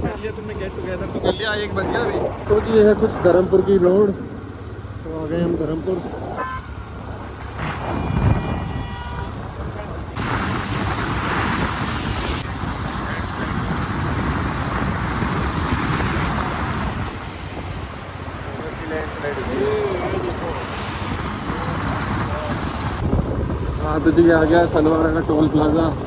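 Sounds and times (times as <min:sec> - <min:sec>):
wind: 0:00.0 - 0:26.0
vehicle horn: 0:06.4 - 0:06.8.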